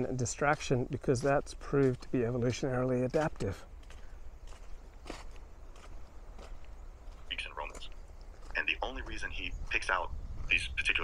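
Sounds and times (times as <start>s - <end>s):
footsteps on sandy dirt: 0.0s - 10.7s.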